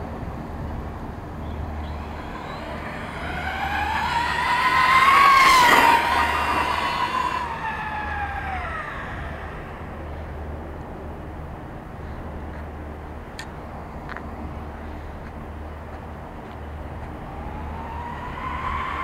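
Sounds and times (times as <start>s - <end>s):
electric motor whining past: 1.4s - 10.8s, 17.0s - 19.0s
tyre noise rush: 1.7s - 10.4s.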